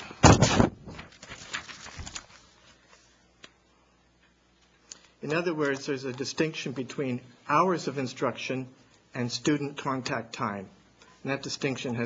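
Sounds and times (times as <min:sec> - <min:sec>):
faint clicks and rustles: 0:00.9 - 0:03.6.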